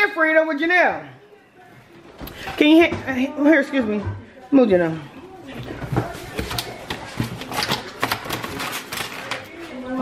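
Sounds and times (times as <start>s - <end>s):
faint voices: 1.0s - 10.0s.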